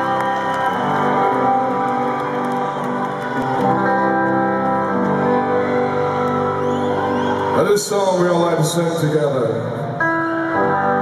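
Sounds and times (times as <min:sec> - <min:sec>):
rock band playing live: 0:00.0 - 0:11.0
guitar chords ringing: 0:09.8 - 0:11.0.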